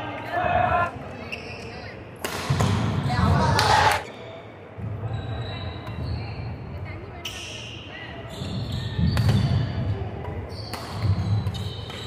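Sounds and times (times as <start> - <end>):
rackets hitting shuttlecock: 2.2 - 4.0, 10.2 - 12.0.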